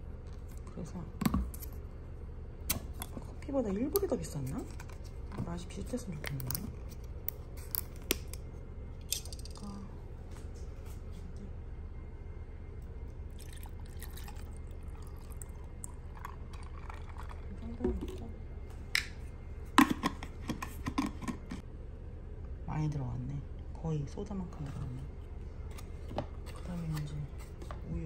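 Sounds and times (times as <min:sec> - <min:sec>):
liquid pouring over ice: 0:13.3 - 0:17.8.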